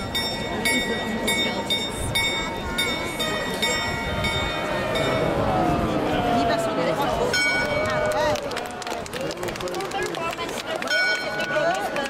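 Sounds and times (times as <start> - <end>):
clock bell striking: 0.0 - 5.5
crowd chatter: 0.0 - 12.0.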